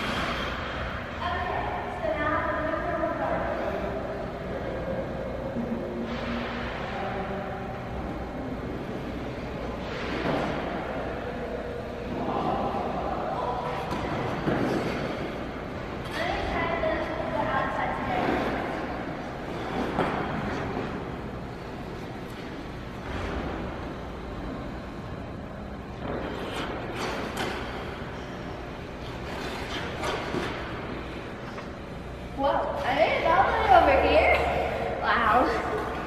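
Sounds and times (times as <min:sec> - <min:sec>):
steady low hum: 0:00.0 - 0:36.0
skate blades scraping ice: 0:29.0 - 0:30.9.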